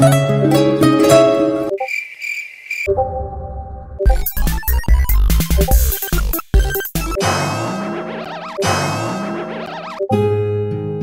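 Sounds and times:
plucked string music: 0.0s - 1.8s
cricket chirping sound effect: 1.7s - 10.1s.

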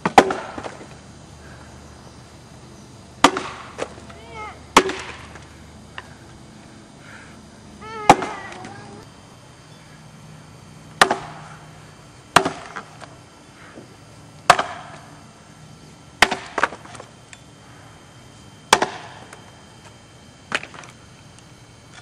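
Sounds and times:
axe striking wood block: 3.2s - 3.6s, 4.8s - 5.2s, 11.0s - 11.4s, 12.4s - 12.8s, 14.5s - 14.8s, 18.7s - 19.0s.

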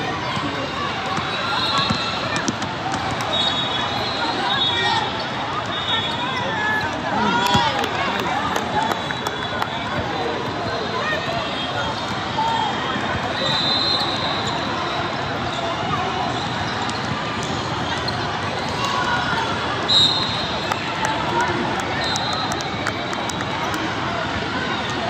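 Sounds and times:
spectators chatter: 0.0s - 25.0s.

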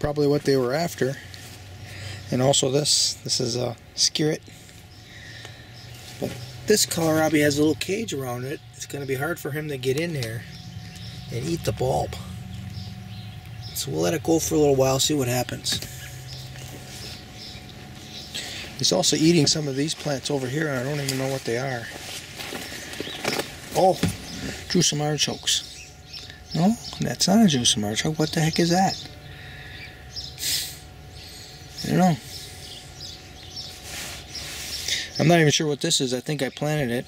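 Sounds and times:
low outdoor background: 0.0s - 37.0s
steady low hum: 0.0s - 37.0s
man speaking: 6.2s - 10.5s, 11.3s - 12.4s, 13.8s - 15.9s, 18.4s - 22.0s, 31.8s - 32.2s.

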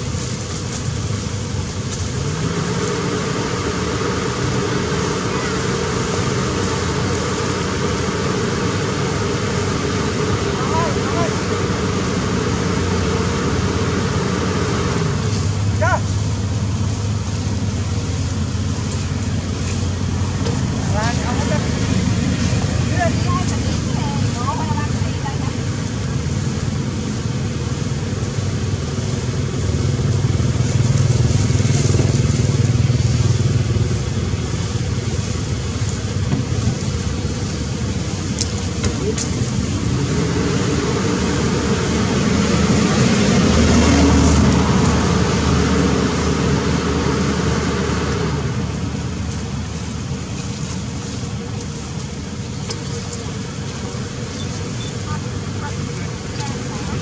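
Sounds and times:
rumble of passing vehicles: 0.0s - 57.0s
faint voices: 4.6s - 9.4s, 49.0s - 57.0s.

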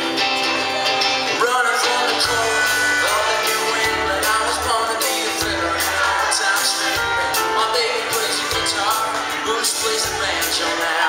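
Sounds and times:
country rock band playing: 0.0s - 11.0s
man singing: 0.4s - 11.0s.

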